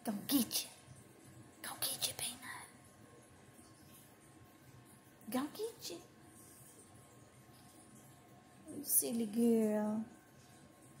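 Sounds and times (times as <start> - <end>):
person whispering: 1.6 - 2.8.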